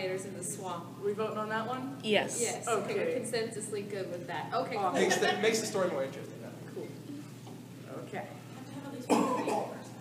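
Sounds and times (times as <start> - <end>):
people talking: 0.0 - 6.1, 7.9 - 10.0
person coughing: 9.1 - 9.8.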